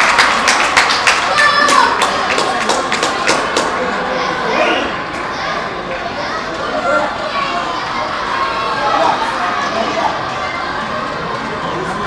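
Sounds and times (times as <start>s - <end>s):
sharp claps: 0.0s - 3.8s
voices shouting and cheering: 0.0s - 12.0s.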